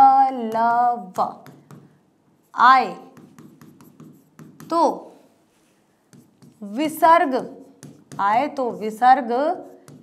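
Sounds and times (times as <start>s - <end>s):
writing tip tapping and scratching: 3.2s - 4.8s, 6.1s - 7.0s, 7.6s - 8.8s, 9.6s - 10.0s.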